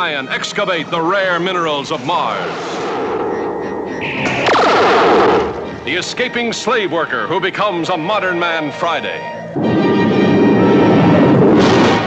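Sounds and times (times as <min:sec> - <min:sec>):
ray gun laser pulsing: 0:02.7 - 0:06.6.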